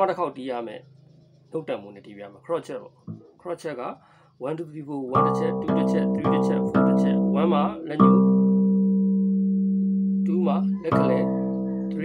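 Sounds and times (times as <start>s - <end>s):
bass guitar note ringing: 5.1s - 12.0s.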